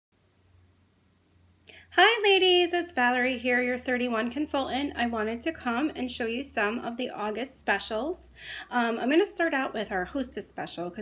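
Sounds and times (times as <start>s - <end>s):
soft intake of breath: 8.3s - 8.7s.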